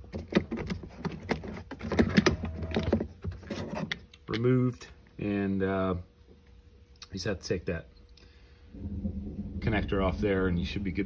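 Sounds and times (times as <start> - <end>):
hard plastic clicks and scrapes: 0.0 - 4.3.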